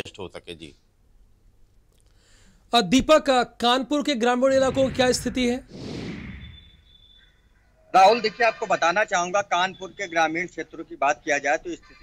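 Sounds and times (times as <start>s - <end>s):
falling whoosh: 4.6s - 6.9s.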